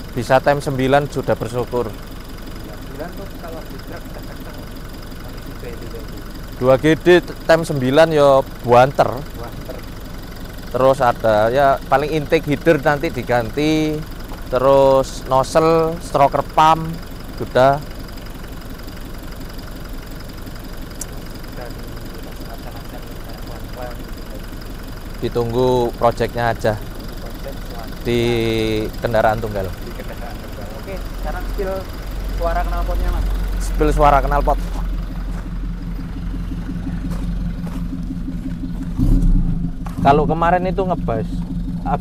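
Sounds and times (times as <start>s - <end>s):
diesel engine idling: 0.0s - 42.0s.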